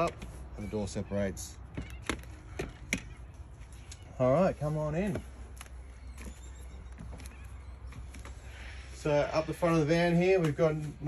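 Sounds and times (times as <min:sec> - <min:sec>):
footsteps on caravan floor: 0:04.9 - 0:08.6.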